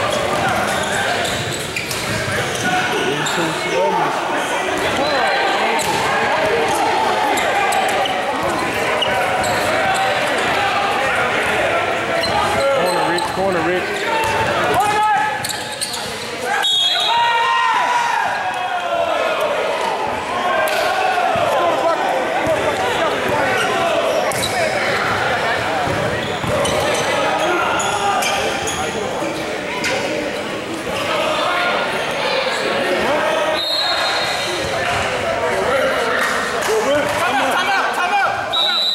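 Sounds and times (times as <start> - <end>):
voices and shouts echoing: 0.0 - 38.9.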